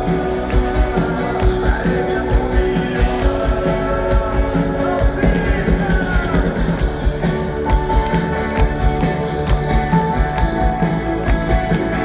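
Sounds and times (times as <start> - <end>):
live rock band: 0.0 - 12.0.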